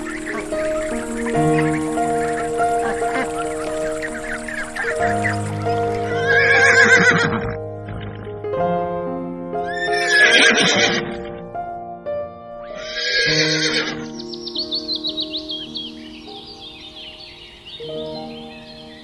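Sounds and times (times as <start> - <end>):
background music with held notes: 0.0 - 19.0
horse whinnying: 6.1 - 8.2, 9.7 - 11.2, 12.8 - 14.0.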